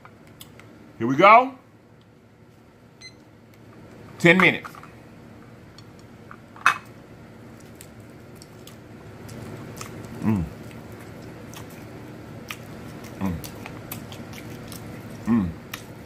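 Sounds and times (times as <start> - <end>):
mouth chewing wet smacks: 7.6 - 16.0
person humming hmm: 10.2 - 10.6, 15.2 - 15.6.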